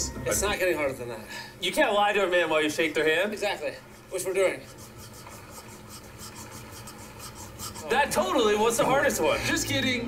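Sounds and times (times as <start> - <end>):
soft rapid scratching strokes: 2.7 - 9.4.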